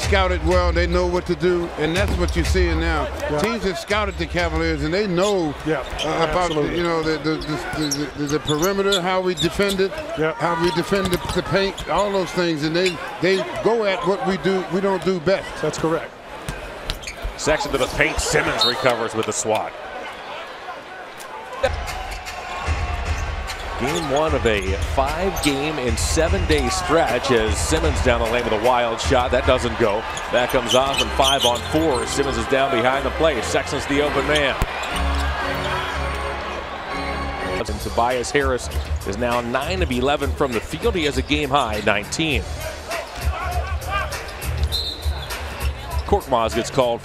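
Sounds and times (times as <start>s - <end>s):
faint arena music: 0.0s - 16.1s, 21.7s - 47.0s
crowd noise: 0.0s - 47.0s
referee's whistle: 44.6s - 45.4s.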